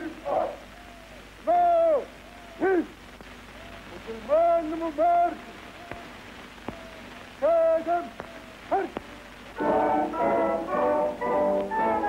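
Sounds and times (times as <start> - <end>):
person shouting drawn-out calls: 0.1 - 3.0.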